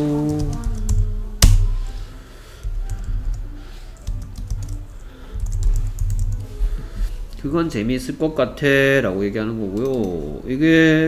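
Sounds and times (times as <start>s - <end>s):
keyboard typing: 0.0s - 1.7s, 2.6s - 7.0s, 9.7s - 10.2s.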